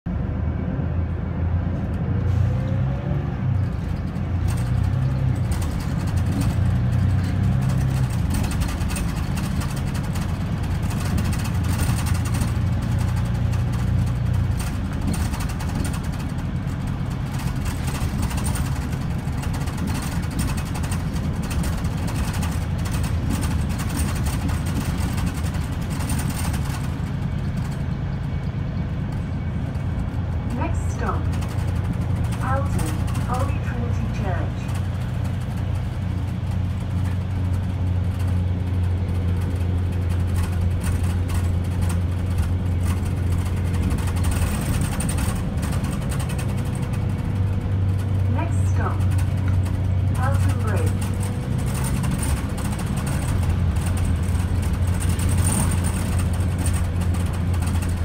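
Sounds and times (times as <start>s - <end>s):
bus engine drone: 0.0s - 58.0s
interior rattles: 3.6s - 58.0s.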